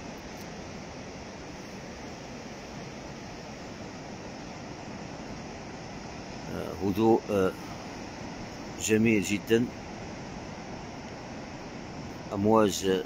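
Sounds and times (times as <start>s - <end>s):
waves washing on rocky shore: 0.0s - 13.0s.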